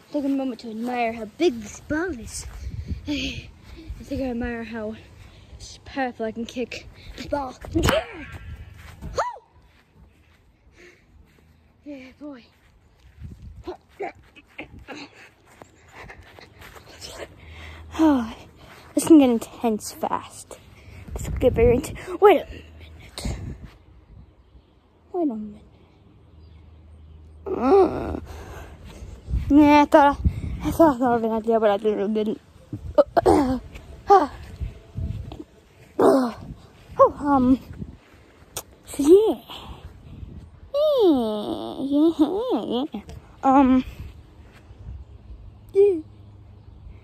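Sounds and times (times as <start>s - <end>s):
person panting: 2.5s - 4.0s, 9.7s - 12.3s, 14.7s - 19.0s, 27.8s - 29.4s, 30.2s - 30.6s
person making vocal sounds: 27.4s - 28.4s.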